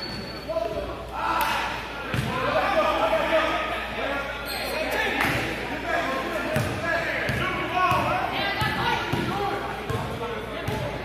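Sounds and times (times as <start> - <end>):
voices calling out echoing: 0.0 - 11.0.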